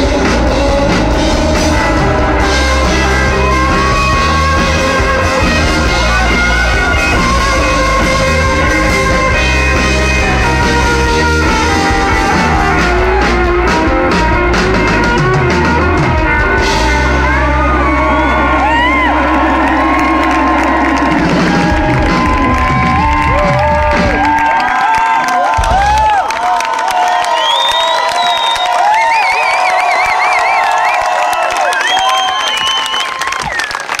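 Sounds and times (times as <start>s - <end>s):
live rock band playing: 0.0s - 26.2s
crowd cheering and whooping: 0.0s - 34.0s.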